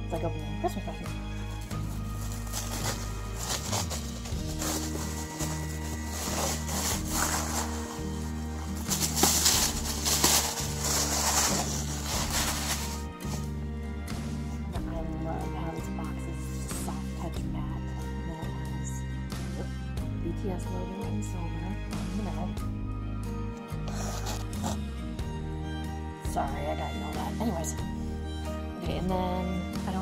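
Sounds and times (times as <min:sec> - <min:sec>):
background music with bass line: 0:00.0 - 0:30.0
paper and plastic crinkling: 0:01.5 - 0:13.5.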